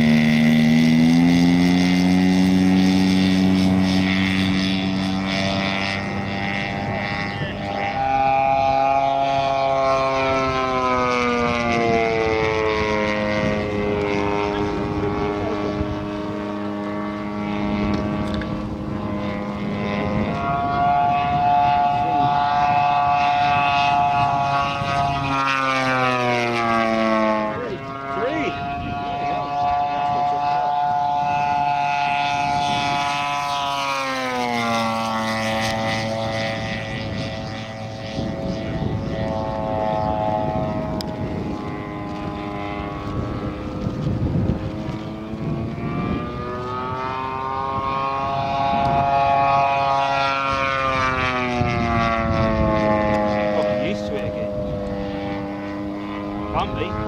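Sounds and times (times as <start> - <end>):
model plane engine flying past: 0.0 - 57.0.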